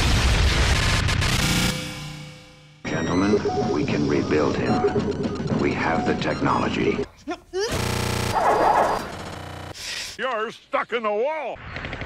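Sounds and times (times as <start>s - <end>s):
loud buzzing tone: 7.7s - 9.8s
noisy glitch burst: 7.7s - 9.8s.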